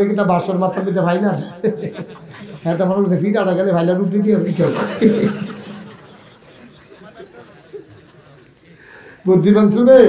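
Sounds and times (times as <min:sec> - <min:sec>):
man preaching into a microphone: 0:00.0 - 0:02.0, 0:02.6 - 0:05.4, 0:09.2 - 0:10.0.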